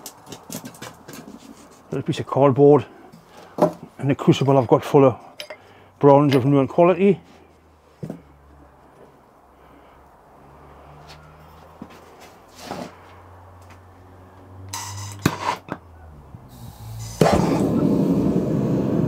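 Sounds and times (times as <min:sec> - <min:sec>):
gas torch hissing and clicking: 0:14.7 - 0:15.6, 0:16.5 - 0:19.0
furnace burner gas flame rush: 0:16.5 - 0:19.0.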